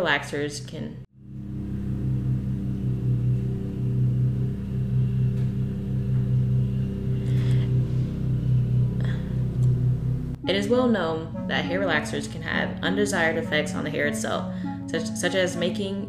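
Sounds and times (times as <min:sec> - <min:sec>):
small engine droning: 0:01.1 - 0:16.0.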